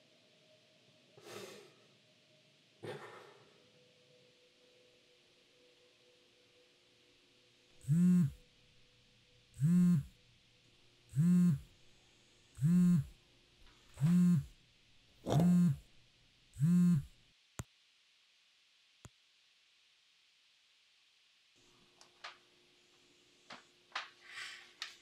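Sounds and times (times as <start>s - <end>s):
phone vibrating on wooden countertop: 7.8s - 8.4s, 9.6s - 10.2s, 11.1s - 11.7s, 12.6s - 13.2s, 13.9s - 14.6s, 15.2s - 15.9s, 16.6s - 17.2s.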